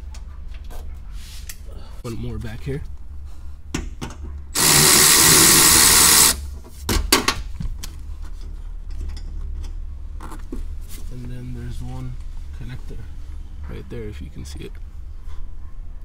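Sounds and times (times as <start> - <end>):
electric ratchet running: 4.6 - 6.4.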